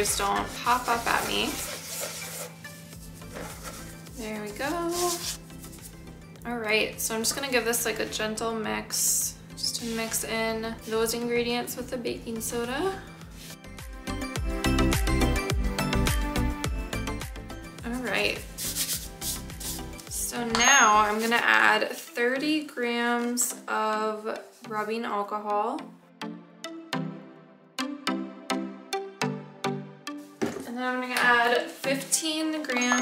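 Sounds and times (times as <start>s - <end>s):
powder rubbing on metal mesh sieve: 0.0s - 6.0s, 9.8s - 11.0s, 18.4s - 20.2s
faint background music: 0.0s - 33.0s.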